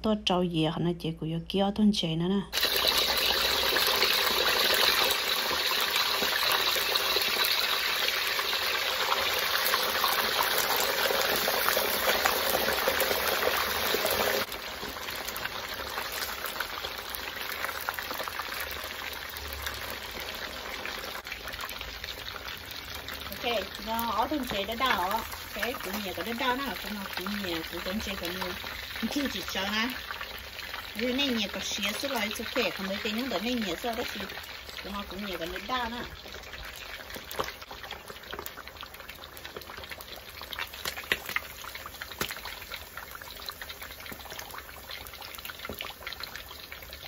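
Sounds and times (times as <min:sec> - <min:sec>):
fish deep-frying in oil: 0:02.5 - 0:47.0.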